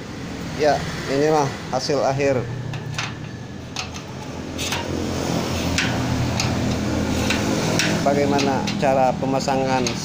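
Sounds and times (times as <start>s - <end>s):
metal slide bolt clicking: 2.7s - 9.0s.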